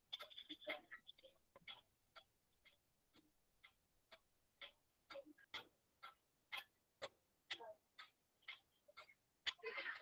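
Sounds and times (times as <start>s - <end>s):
faint clock ticking: 0.0s - 10.0s.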